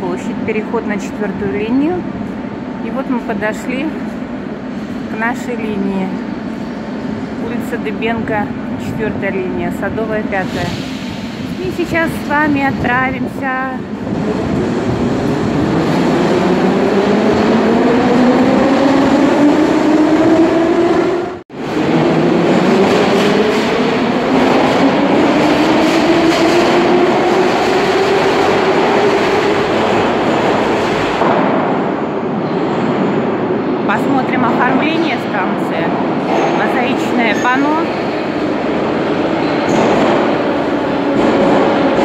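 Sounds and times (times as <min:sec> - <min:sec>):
metro train rumble: 0:00.0 - 0:42.0.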